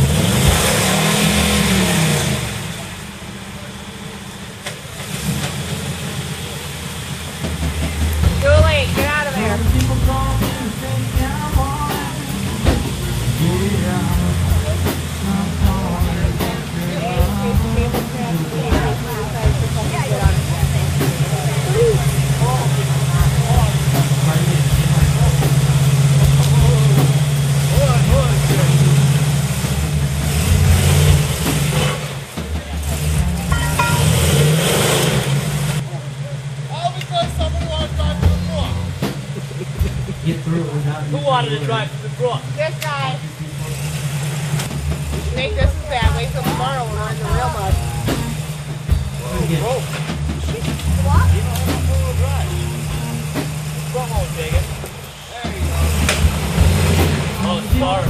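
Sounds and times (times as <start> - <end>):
people talking: 0.0 - 5.4, 7.7 - 34.8, 35.7 - 58.0
truck engine under load: 0.0 - 58.0.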